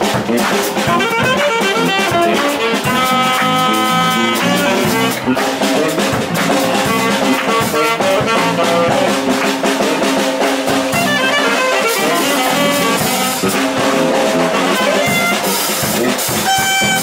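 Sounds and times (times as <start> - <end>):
jazz band playing: 0.0 - 17.0
horn long note: 0.8 - 17.0.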